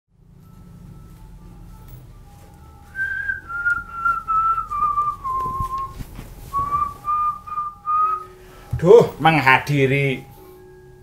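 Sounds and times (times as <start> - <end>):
faint low hum: 0.2 - 9.2
person whistling a tune: 2.9 - 8.4.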